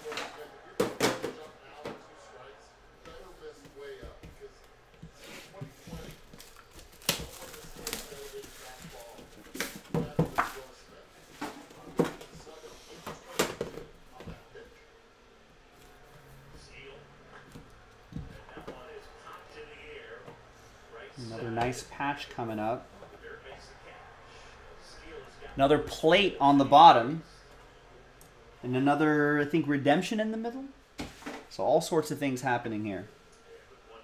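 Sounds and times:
plastic crinkling: 6.2 - 10.8
plastic shrink wrap tearing: 6.4 - 9.2.

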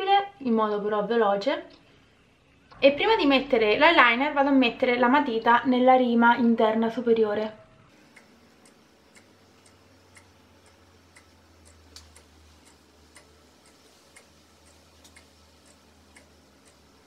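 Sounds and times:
clock ticking: 7.9 - 17.0.

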